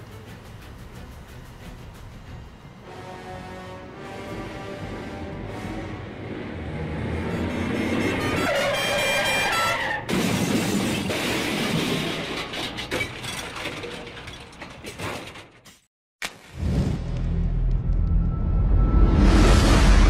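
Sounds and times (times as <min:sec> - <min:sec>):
car horn: 0:07.2 - 0:10.1
clattering and knocking: 0:10.1 - 0:15.6
building rush: 0:17.0 - 0:20.0.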